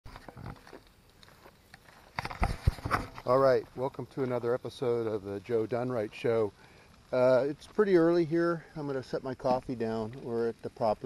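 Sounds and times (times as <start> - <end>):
low hiss: 0.1 - 11.0
camera handling rustles: 1.7 - 3.3.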